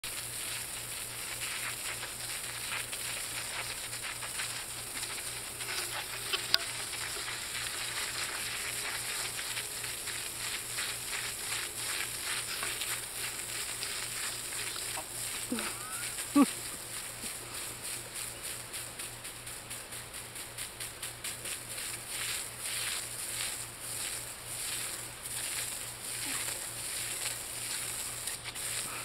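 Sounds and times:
hose water spattering on grass: 0:00.0 - 0:29.0.

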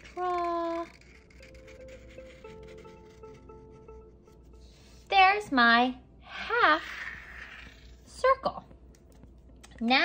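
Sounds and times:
marker rubbing on cardboard: 0:00.0 - 0:05.0
faint background music: 0:00.0 - 0:10.0.

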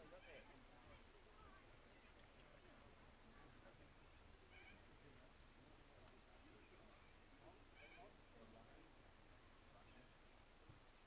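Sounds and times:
faint high-pitched tones: 0:00.0 - 0:10.4.

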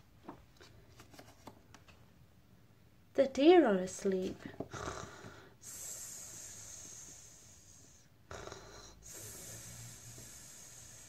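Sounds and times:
person breathing in sleep: 0:04.7 - 0:11.0.

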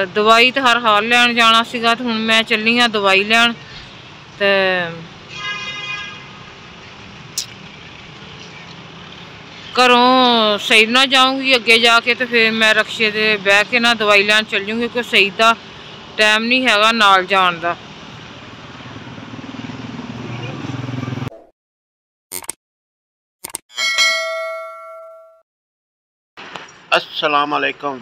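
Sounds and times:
steady background noise: 0:06.2 - 0:21.3
vehicle engine humming: 0:06.4 - 0:21.3
held tone: 0:23.7 - 0:25.4.

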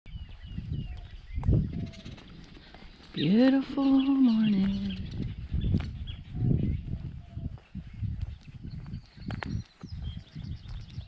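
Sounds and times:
high falling bird chirps: 0:00.1 - 0:11.0.

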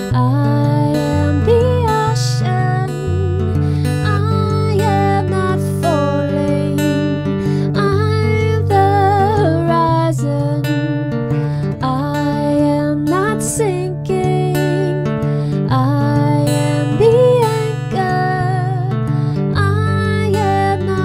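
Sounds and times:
strummed acoustic guitar: 0:00.0 - 0:21.0
woman singing: 0:00.0 - 0:21.0.

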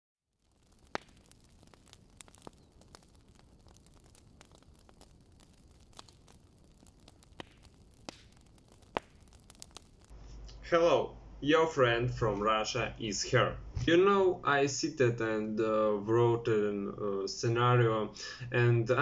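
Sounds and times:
sharp clicks and pops: 0:00.4 - 0:10.6.

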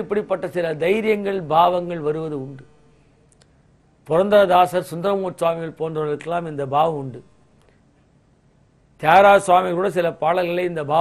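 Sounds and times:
man's voice: 0:00.0 - 0:02.7, 0:04.1 - 0:07.3, 0:09.0 - 0:11.0.

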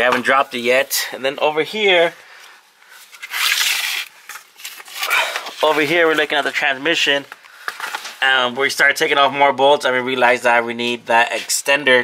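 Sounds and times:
camera handling rustling: 0:07.3 - 0:08.2.

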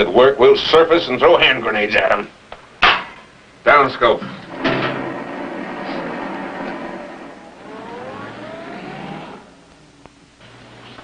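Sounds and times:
low steady hum: 0:00.0 - 0:11.0
periscope mechanical rush and whine: 0:04.4 - 0:11.0.

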